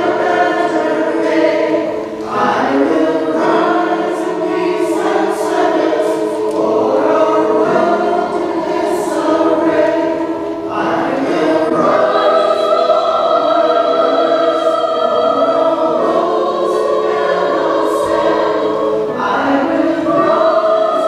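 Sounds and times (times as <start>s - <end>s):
choir singing in harmony: 0.0s - 21.0s.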